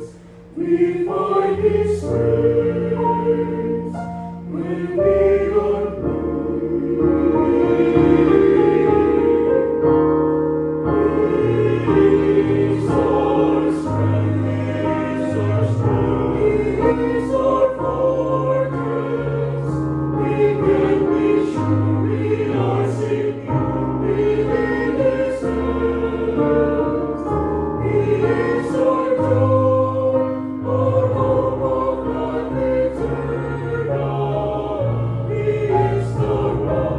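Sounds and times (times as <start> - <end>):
church choir singing in harmony: 0.0 - 36.9.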